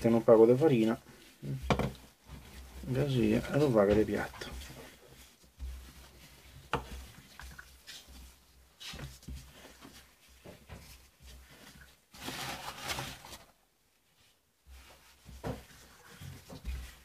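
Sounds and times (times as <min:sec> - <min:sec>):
dough knocks and rubs: 0:00.0 - 0:13.3, 0:14.0 - 0:17.0.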